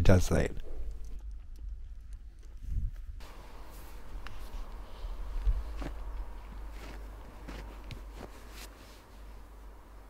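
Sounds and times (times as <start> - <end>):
wind rumbling on microphone: 0.6 - 3.2
footsteps on dry ground: 2.6 - 9.0.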